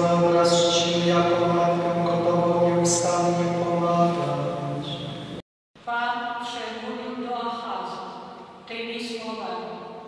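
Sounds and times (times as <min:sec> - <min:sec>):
man chanting a prayer: 0:00.0 - 0:05.2.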